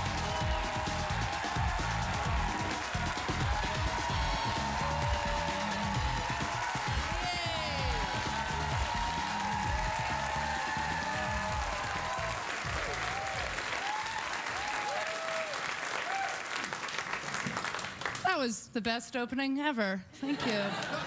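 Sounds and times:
audience applauding: 0.0 - 18.4.

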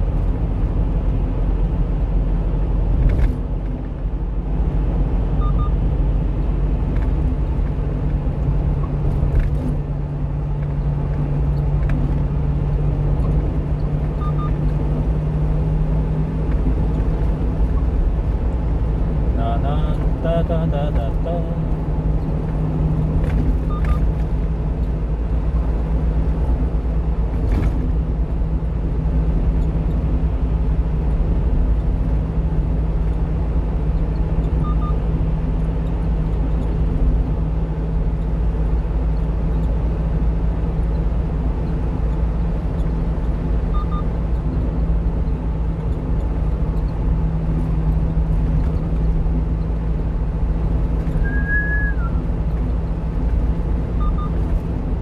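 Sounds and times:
truck engine and road drone: 0.0 - 55.0
faint short double beeps: 5.4 - 5.8, 51.2 - 52.2.

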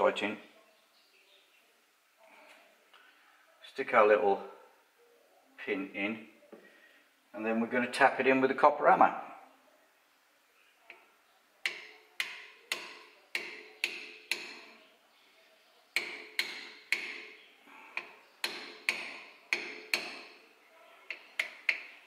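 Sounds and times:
hammer tapping metal pin: 11.6 - 14.8, 16.0 - 17.4, 18.0 - 20.4, 21.1 - 22.0.

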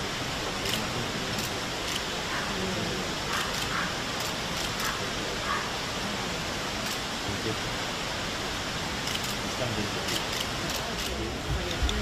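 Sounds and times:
low murmured conversation: 0.0 - 12.0
steady rushing noise: 0.0 - 12.0.

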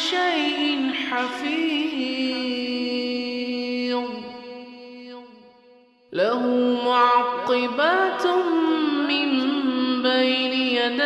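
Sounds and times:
person chanting recitation: 0.0 - 11.0.

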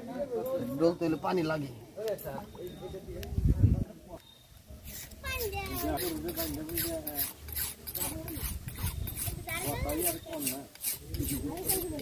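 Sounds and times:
blade rasping on sharpening stone: 4.9 - 12.0.

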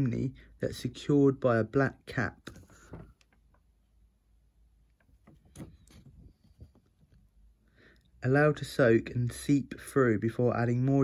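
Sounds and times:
soft handling taps and rustles: 2.5 - 3.7.

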